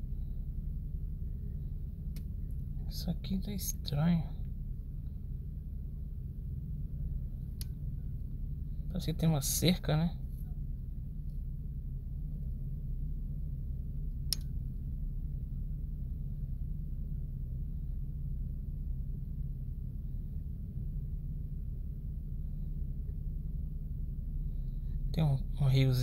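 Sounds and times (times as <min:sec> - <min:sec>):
low background rumble: 0:00.0 - 0:26.0.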